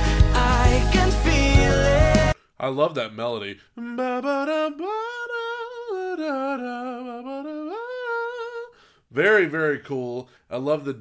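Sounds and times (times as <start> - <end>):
man humming a melody: 3.8 - 8.7.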